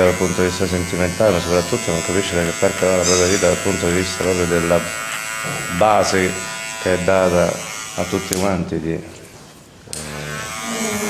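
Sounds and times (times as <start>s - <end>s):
electric hair trimmer buzzing: 0.0s - 8.7s, 9.9s - 11.0s.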